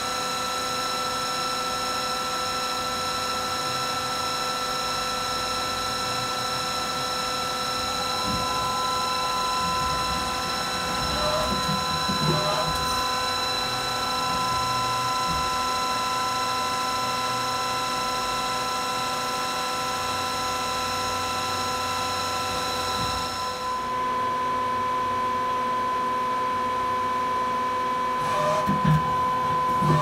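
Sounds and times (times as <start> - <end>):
lathe whining: 0.0 - 30.0.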